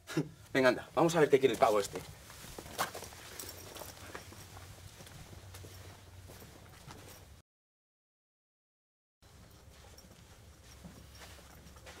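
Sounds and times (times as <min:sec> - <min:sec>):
footsteps walking away: 0:00.4 - 0:07.4, 0:09.2 - 0:12.0
low room hum: 0:09.2 - 0:12.0.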